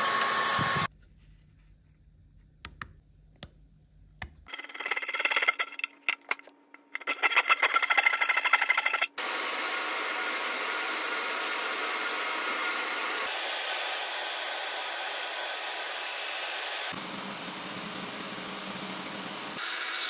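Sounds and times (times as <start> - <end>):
router table machine noise: 0.0 - 0.9, 7.0 - 20.0.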